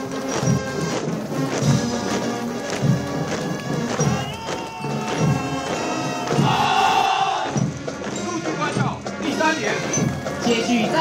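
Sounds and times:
military band playing a march: 0.0 - 11.0
low drum thumps: 0.4 - 8.2.

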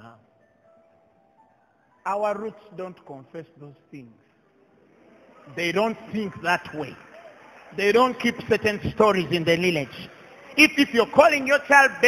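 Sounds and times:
faint sustained keyboard notes: 0.0 - 10.0
man preaching: 2.0 - 4.2, 5.5 - 7.1, 7.7 - 12.0.

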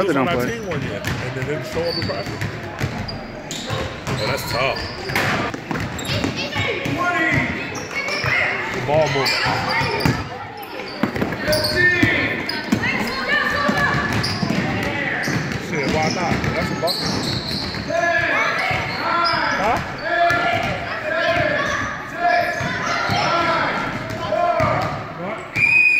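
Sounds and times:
people calling out and talking: 0.0 - 25.9
sneakers squeaking: 0.3 - 25.9
basketballs bouncing on wooden floor: 0.9 - 19.0, 19.6 - 21.8, 22.6 - 25.0.

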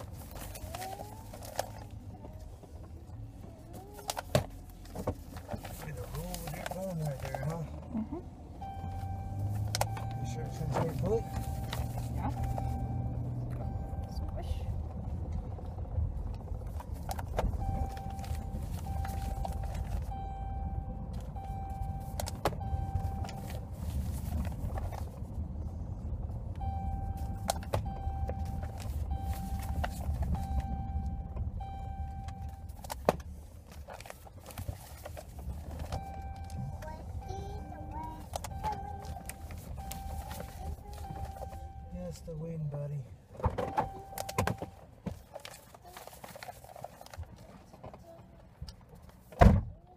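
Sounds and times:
car engine rumble: 0.0 - 49.9
single-pitched beep: 8.6 - 14.4, 26.6 - 32.7, 36.0 - 42.0, 43.7 - 44.8.

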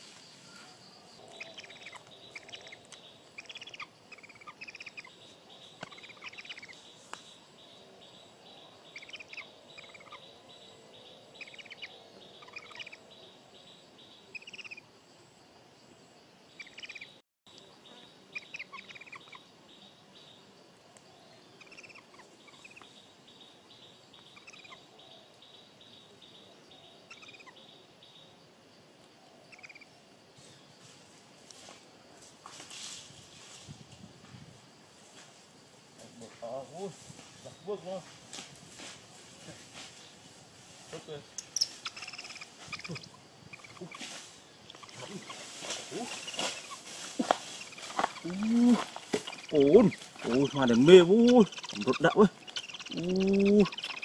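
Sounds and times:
bird chirps: 0.0 - 14.8, 16.6 - 20.4, 21.1 - 28.3, 41.0 - 54.0
pulsing insect trill: 0.0 - 54.0.

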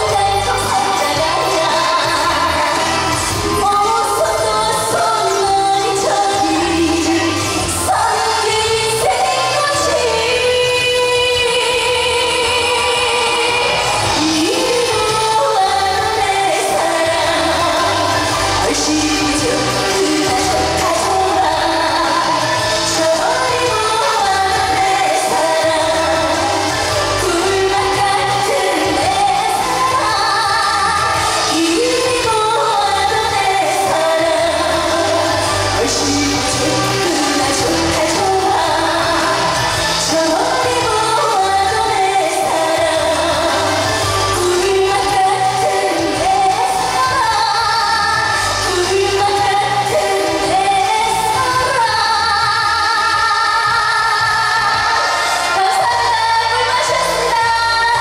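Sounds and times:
amplified backing track: 0.0 - 58.0
woman singing into microphone: 0.0 - 58.0.

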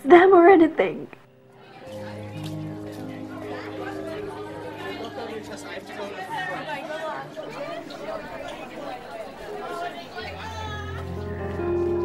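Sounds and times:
chatter of many voices: 1.3 - 12.0.

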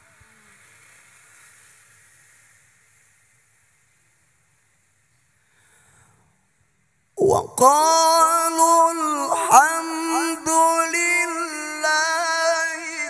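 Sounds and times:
faint hiss: 0.0 - 13.0
echo of reciting voice: 7.2 - 13.0.

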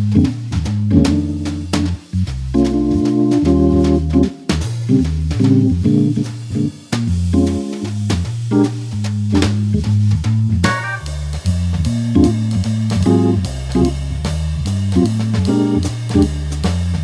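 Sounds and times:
organ playing: 0.0 - 9.9, 10.6 - 14.2, 15.0 - 16.4
drum-kit cymbal strokes: 0.0 - 17.0.

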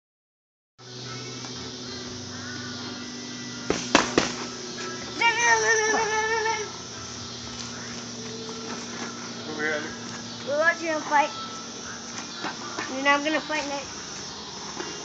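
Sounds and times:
steady low hum: 0.8 - 15.0
boxing gloves slapping: 3.7 - 4.6.

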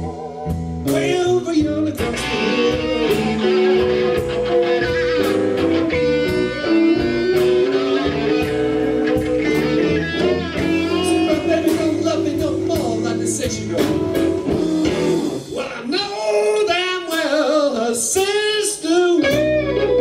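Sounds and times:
drum kit with cymbals: 0.0 - 16.2
electric guitar bending notes: 0.0 - 17.6, 19.1 - 20.0
bass guitar: 0.0 - 20.0.

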